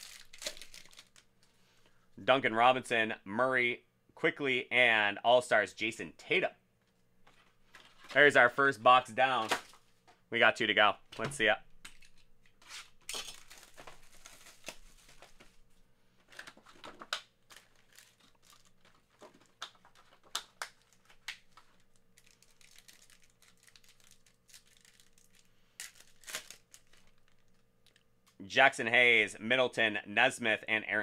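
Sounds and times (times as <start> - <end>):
cellophane tearing: 0.0 - 1.2, 12.8 - 15.5, 16.3 - 28.0
foil packs crinkling and ripping: 0.0 - 1.3, 13.3 - 15.6, 16.3 - 27.6.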